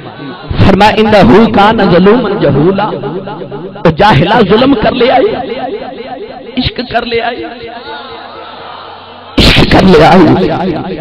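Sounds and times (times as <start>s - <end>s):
distorted loud shout: 0.0s - 1.5s, 7.7s - 10.2s
man preaching over loudspeaker: 0.0s - 8.0s, 9.4s - 11.0s.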